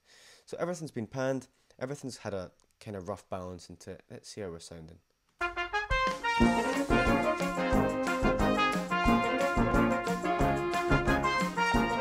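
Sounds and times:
brass band playing: 5.4 - 12.0.

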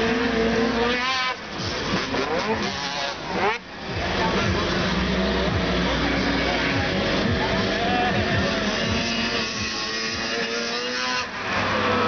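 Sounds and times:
crowd din: 0.0 - 12.0
dirt bike engine revving: 0.0 - 12.0.

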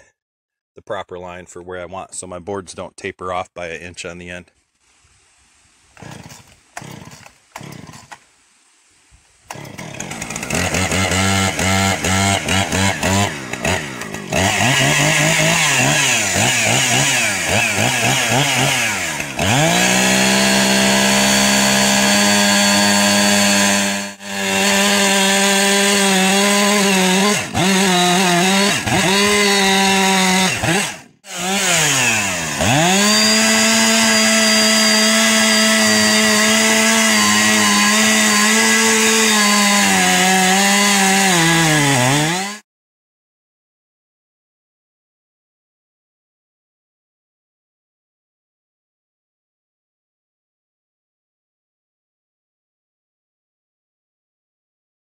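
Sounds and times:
chainsaw cutting log: 5.9 - 8.3, 9.4 - 42.6.

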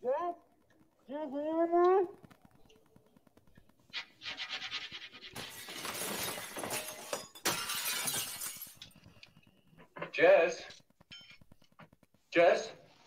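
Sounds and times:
glass shattering: 5.2 - 9.3, 11.0 - 11.7.

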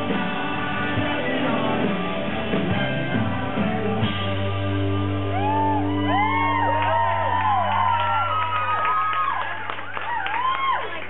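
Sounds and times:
crowd whooping and whistling: 5.2 - 11.0.

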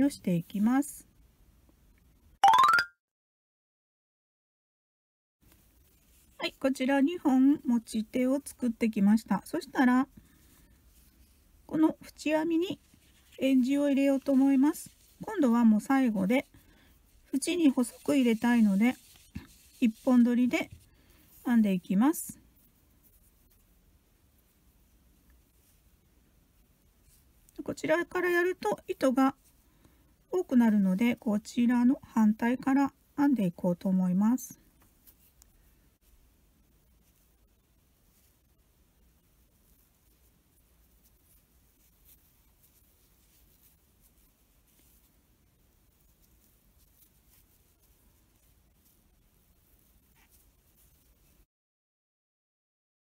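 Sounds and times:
faint room hum: 0.0 - 2.4, 5.4 - 51.5
faint rustling of yarn: 0.0 - 2.4, 5.4 - 51.5.

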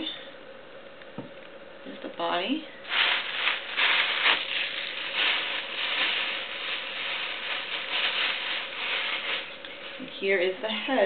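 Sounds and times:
plastic bag crinkling: 2.8 - 11.0.

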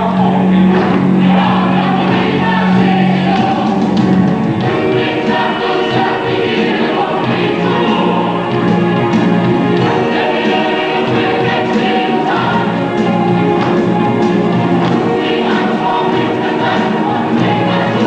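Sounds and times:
choir singing: 0.0 - 18.0
orchestra playing: 0.0 - 18.0.

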